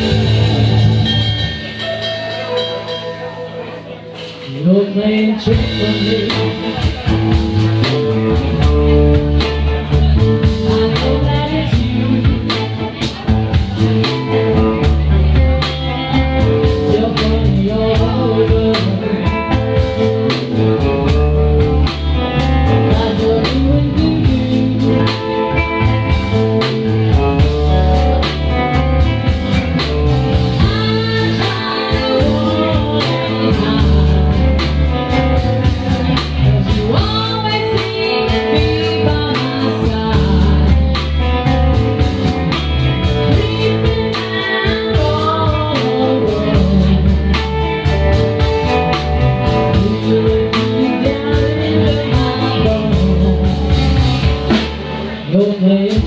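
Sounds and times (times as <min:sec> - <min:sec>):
bass guitar: 0:00.0 - 0:56.0
drum kit: 0:00.0 - 0:56.0
guitar: 0:00.0 - 0:56.0
woman singing: 0:03.9 - 0:29.2, 0:29.8 - 0:54.7, 0:55.3 - 0:56.0.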